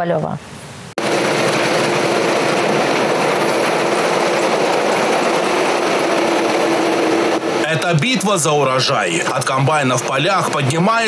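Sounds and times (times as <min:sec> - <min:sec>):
combine harvester running: 0:01.0 - 0:11.0.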